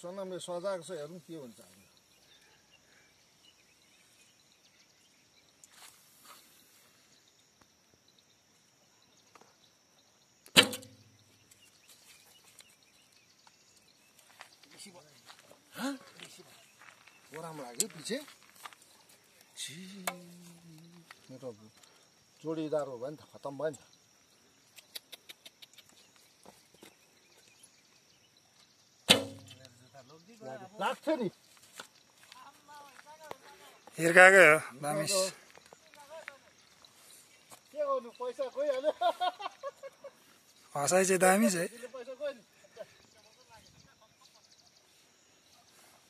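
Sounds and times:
bowstring snap and twang: 10.5 - 11.2, 29.1 - 29.8.

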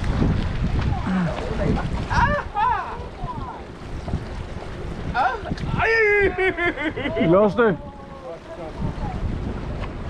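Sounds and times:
water washing against rocks: 0.0 - 5.8
wind rumbling on microphone: 0.0 - 10.0
man calling out: 5.2 - 8.4.

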